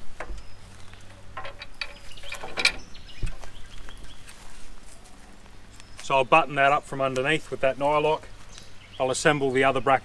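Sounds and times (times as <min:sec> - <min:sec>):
light clicks and knocks: 0:00.2 - 0:03.6.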